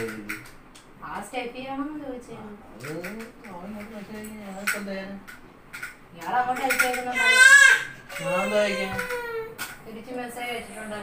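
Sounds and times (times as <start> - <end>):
people talking: 6.2 - 7.6, 8.2 - 11.0.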